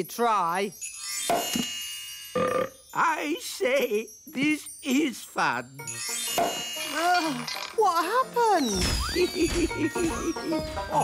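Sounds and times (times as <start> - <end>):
high twinkling shimmer: 0.0 - 10.5.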